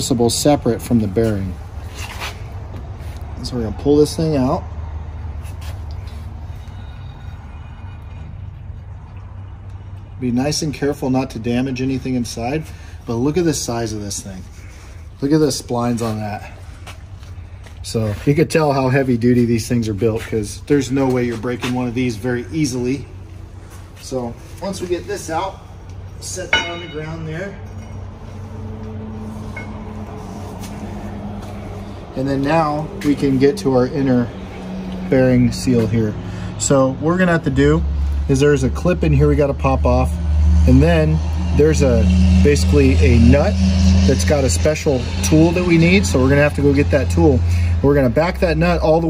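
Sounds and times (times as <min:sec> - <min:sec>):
metal shaft scraping: 0:24.5 - 0:34.7, 0:40.7 - 0:47.6.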